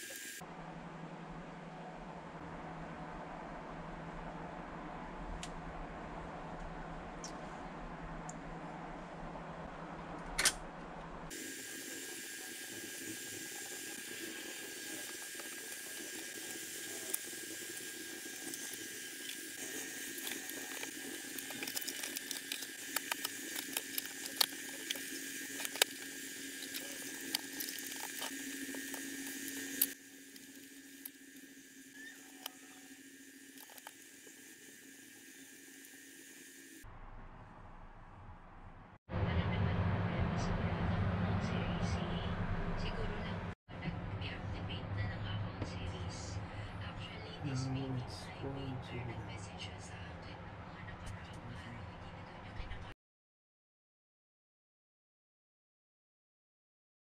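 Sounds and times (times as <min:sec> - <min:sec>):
faint constant hum: 0:39.2 - 0:52.9.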